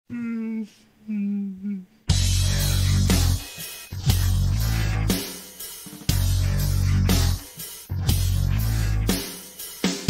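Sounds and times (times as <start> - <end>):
person humming: 0.1 - 5.3, 6.1 - 9.3.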